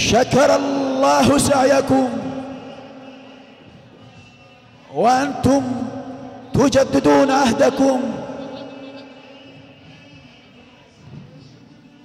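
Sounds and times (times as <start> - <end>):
man's voice over loudspeakers: 0.0 - 3.8, 4.6 - 11.6.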